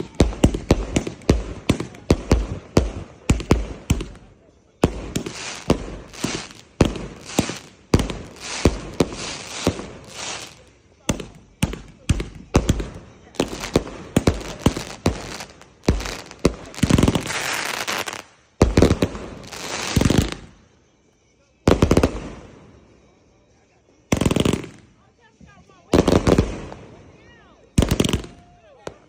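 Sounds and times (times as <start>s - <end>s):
fireworks launches and bursts: 0.0s - 20.7s, 21.7s - 23.1s, 24.1s - 24.9s, 25.9s - 29.0s.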